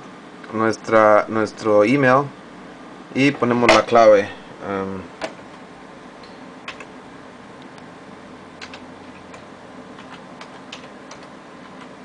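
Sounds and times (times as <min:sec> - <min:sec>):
faint room hum: 0:00.0 - 0:12.0
computer keyboard keys clicking: 0:06.7 - 0:06.9, 0:08.6 - 0:12.0.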